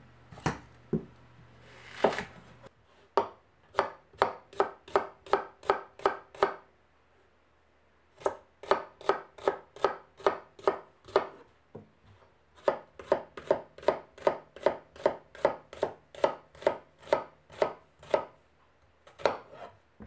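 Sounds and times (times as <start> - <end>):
knife chopping on cutting board: 0.4 - 1.1, 2.0 - 2.4, 3.2 - 6.6, 8.2 - 11.4, 12.6 - 18.3, 19.1 - 19.7.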